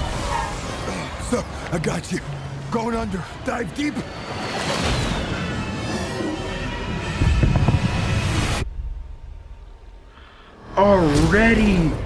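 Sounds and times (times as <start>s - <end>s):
trailer music: 0.0s - 12.0s
deep low rumble: 6.6s - 10.1s.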